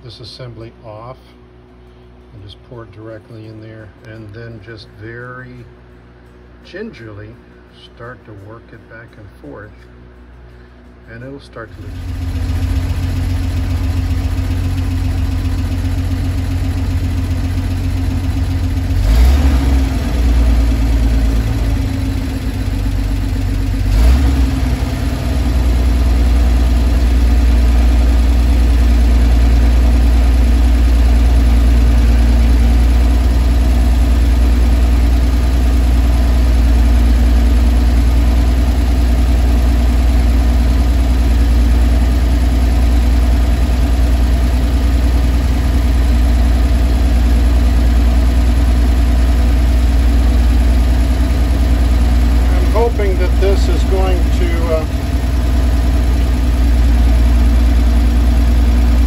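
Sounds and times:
engine idling: 0.0s - 59.0s.

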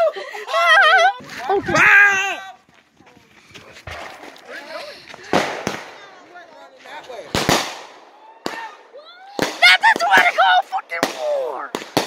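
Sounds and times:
fireworks bangs and crackling: 3.8s - 12.0s.

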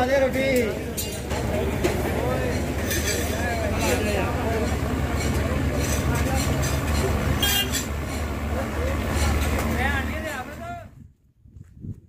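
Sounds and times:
people talking: 0.0s - 11.0s
low rumble of vehicle engines: 0.0s - 12.0s.

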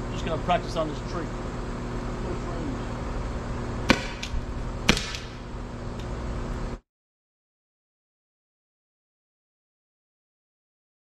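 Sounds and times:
steady low hum: 0.0s - 6.8s
launcher shot sharp pop: 3.9s - 5.4s.

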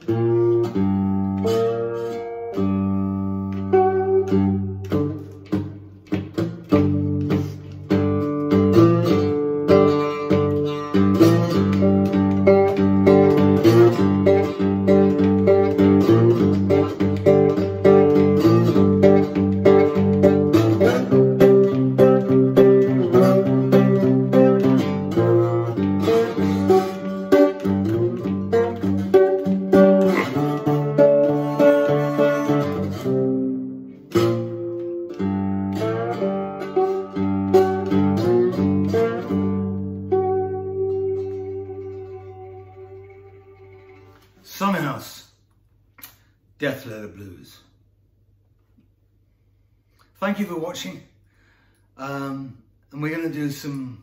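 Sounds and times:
slide guitar blues picking: 0.0s - 44.5s.

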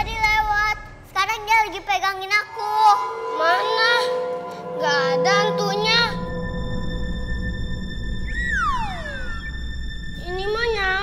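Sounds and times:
steady held music notes: 0.0s - 11.0s.

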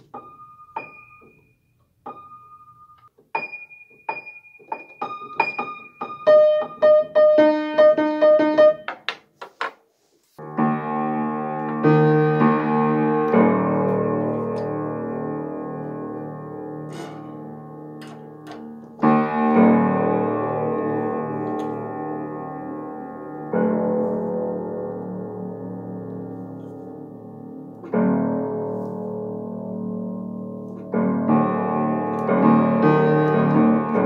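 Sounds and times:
piano notes struck during tuning: 0.0s - 8.9s, 10.6s - 26.3s
piano chords ringing: 0.0s - 9.0s, 10.4s - 34.0s.

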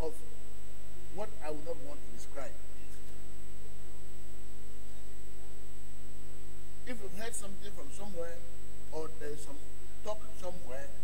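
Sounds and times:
man talking: 0.0s - 0.3s, 1.1s - 3.2s, 6.9s - 11.0s
electrical mains hum: 0.0s - 11.0s
thin high whine: 0.0s - 11.0s.

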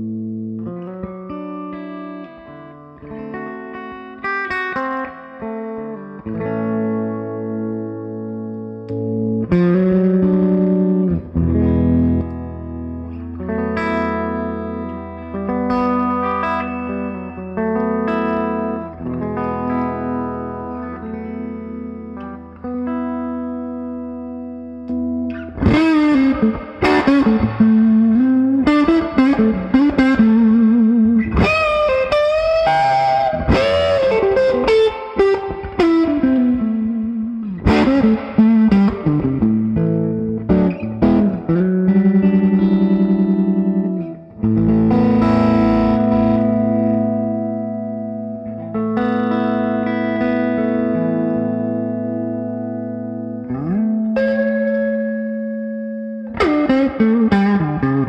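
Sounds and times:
fuzz electric guitar: 0.0s - 58.0s.

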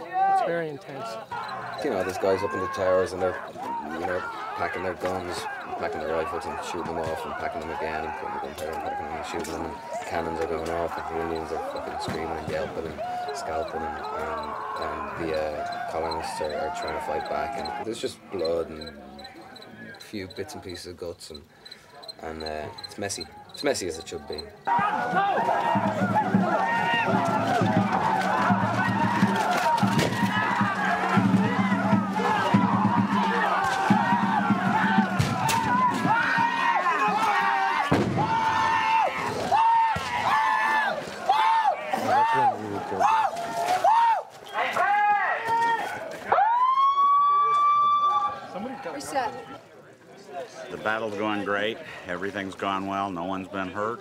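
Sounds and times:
voices yelling war cries: 0.0s - 20.0s, 22.0s - 49.5s.

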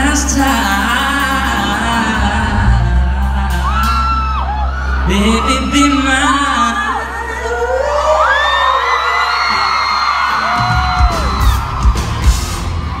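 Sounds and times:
live rock band: 0.0s - 8.0s, 8.8s - 13.0s
fans whooping and screaming: 3.4s - 13.0s
heavy drum and cymbal hits: 10.5s - 13.0s.

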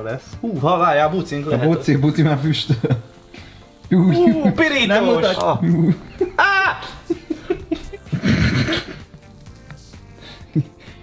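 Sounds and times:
quiet background music: 0.0s - 11.0s
man laughing: 5.6s - 9.3s, 10.2s - 11.0s.

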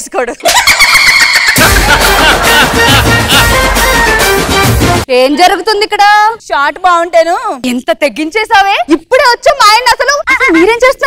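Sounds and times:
background music with heavy bass: 1.6s - 5.1s.

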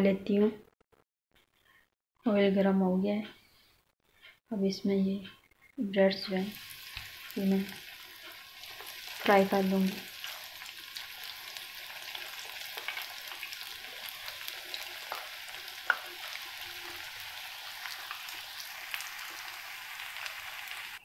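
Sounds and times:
bread sizzling in hot oil: 6.4s - 21.0s.

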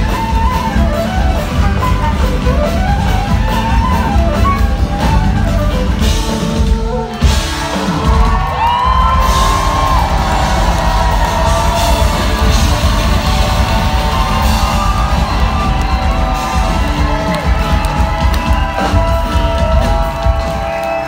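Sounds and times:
drums: 0.0s - 21.0s
folk-rock band playing: 0.0s - 21.0s
crowd whooping and yelling: 6.9s - 21.0s.

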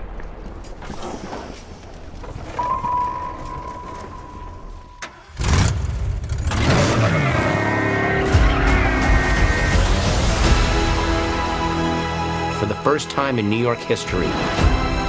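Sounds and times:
tyres skidding: 0.0s - 11.7s
high ringing tone: 2.5s - 5.2s
car engine revving: 5.0s - 11.5s
music: 7.6s - 15.0s.

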